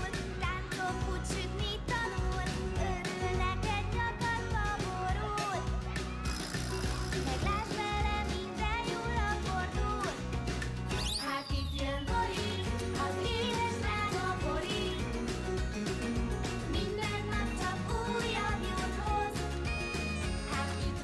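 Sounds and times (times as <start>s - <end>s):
children's cartoon theme song: 0.0s - 21.0s.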